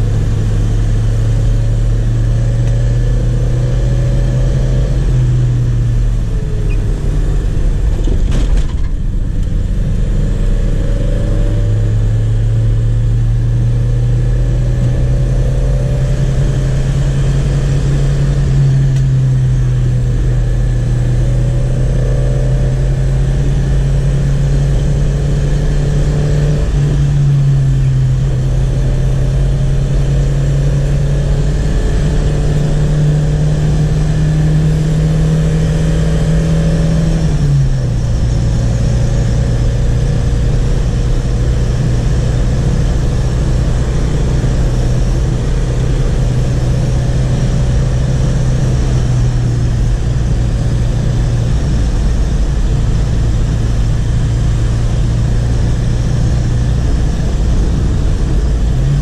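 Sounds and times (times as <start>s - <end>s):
car engine from inside cabin: 0.0s - 59.0s.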